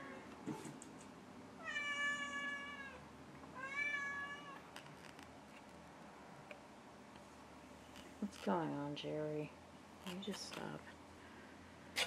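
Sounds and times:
cat meowing: 0:01.6 - 0:03.0, 0:03.6 - 0:04.6.

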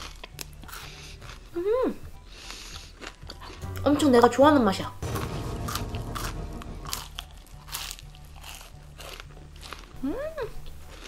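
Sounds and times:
crunching cereal bar: 0:07.7 - 0:10.0.

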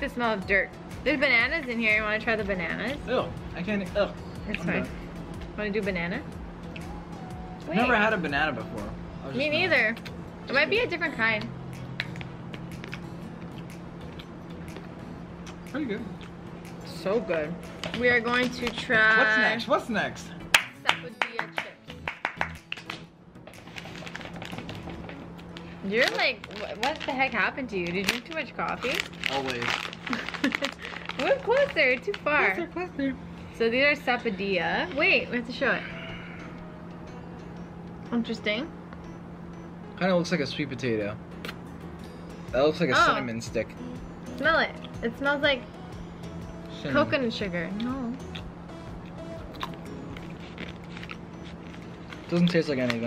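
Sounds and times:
steady low hum: 0:00.0 - 0:53.0
crunching while chewing: 0:23.6 - 0:27.1, 0:28.1 - 0:31.7, 0:48.2 - 0:53.0.

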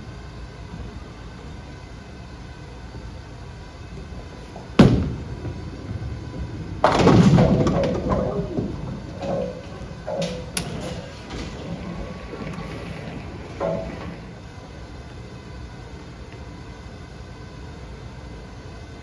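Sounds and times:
bowling ball crashing into pins: 0:04.8 - 0:05.7, 0:06.7 - 0:14.4
bowling ball thudding on lane: 0:06.8 - 0:12.1.

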